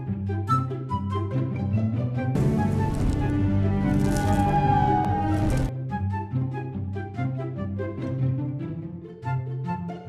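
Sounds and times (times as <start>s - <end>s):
film soundtrack music: 0.0s - 10.0s
rushing crackling sound effect: 2.4s - 5.7s.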